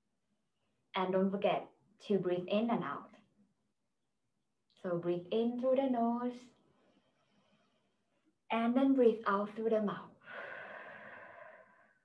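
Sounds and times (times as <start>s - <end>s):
woman exhaling slowly: 10.2s - 12.0s.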